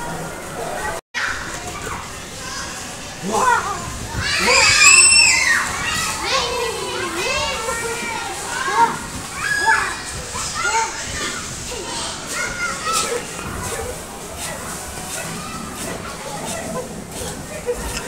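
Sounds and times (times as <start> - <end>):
young children babbling and squealing: 3.4 - 18.0.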